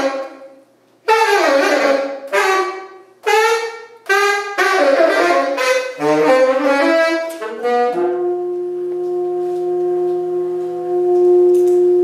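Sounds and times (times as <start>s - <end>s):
tenor saxophone long low note: 0.0s - 12.0s.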